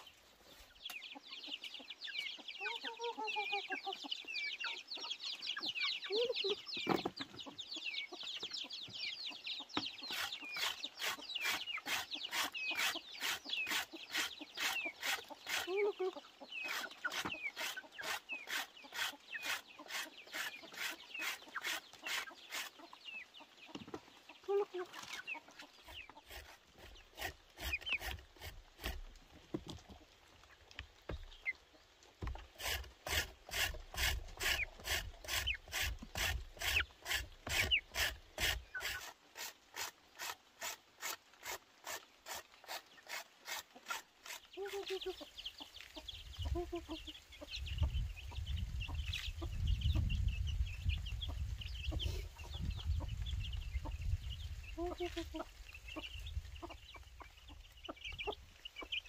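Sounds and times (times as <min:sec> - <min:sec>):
chickens clucking: 0:00.0 - 0:59.0
root scraping on grater: 0:10.1 - 0:15.9, 0:16.7 - 0:22.8, 0:26.2 - 0:29.1, 0:32.2 - 0:45.0.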